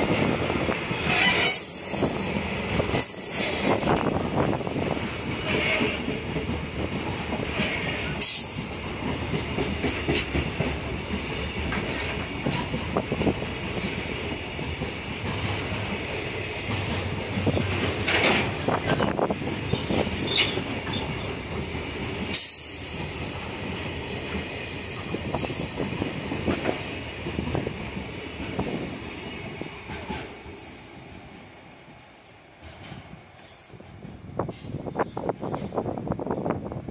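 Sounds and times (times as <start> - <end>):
train wheels clattering over rail joints: 0.0 - 31.5, 32.5 - 36.3
high wheel squeal: 1.0 - 1.9, 19.7 - 21.3.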